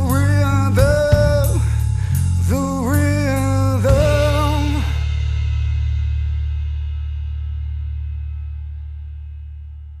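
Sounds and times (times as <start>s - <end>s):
rock song final chord: 0.0s - 9.5s.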